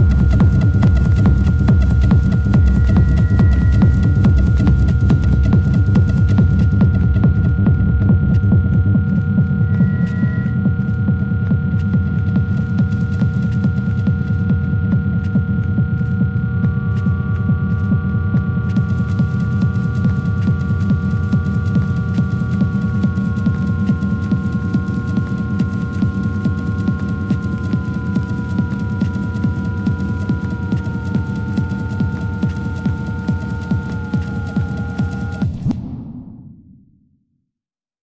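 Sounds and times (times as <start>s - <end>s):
electronic dance music: 0.0s - 10.8s, 18.7s - 35.6s.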